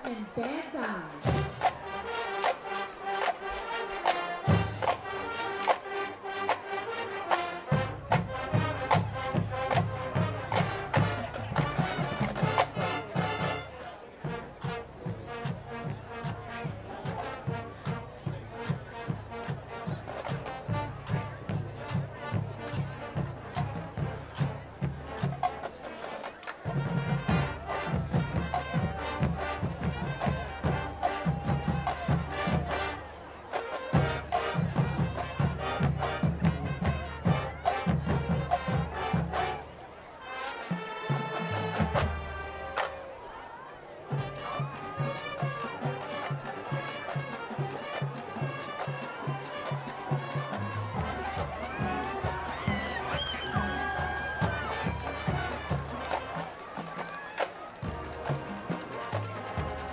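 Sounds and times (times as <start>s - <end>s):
marching band brass: 0.0s - 59.9s
steady drum beat: 0.8s - 2.6s, 7.3s - 13.6s, 26.6s - 33.0s, 44.2s - 59.9s.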